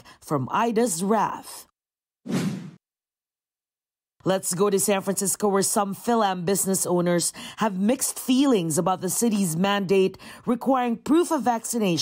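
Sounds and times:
whoosh sound effect: 2.3 - 2.8.

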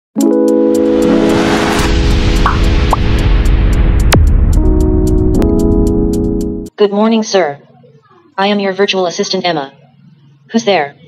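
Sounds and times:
sustained chord: 0.2 - 6.7
noise swell: 0.6 - 6.7.

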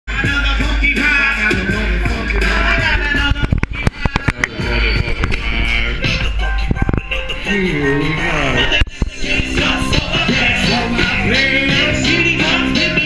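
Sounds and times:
crowd voices: 0.1 - 13.0
loud hip-hop music: 0.1 - 13.0.

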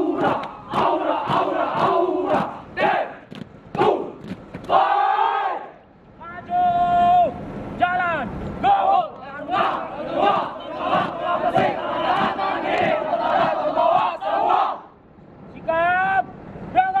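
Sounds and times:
group shouting chant in unison: 0.0 - 3.2, 3.8 - 5.8, 8.6 - 14.9.

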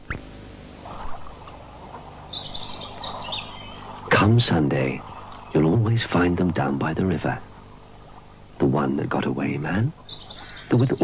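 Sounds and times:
low background hiss: 0.0 - 11.0
small bird twittering: 0.8 - 6.2, 6.8 - 8.6, 9.9 - 11.0.

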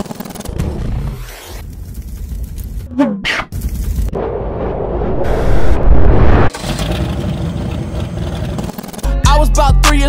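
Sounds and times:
steady low rumble: 3.8 - 6.5.

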